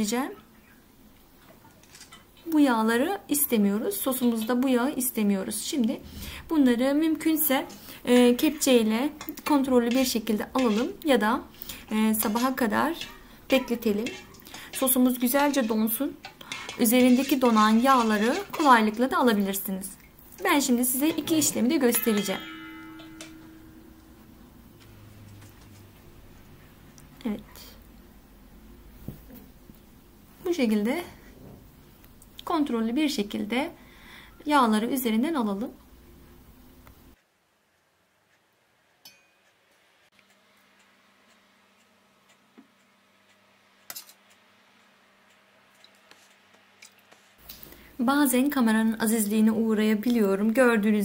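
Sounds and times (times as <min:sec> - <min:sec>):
metal ladle clicking on steel bowl: 0:09.2 - 0:11.1, 0:12.2 - 0:19.0, 0:21.1 - 0:23.8.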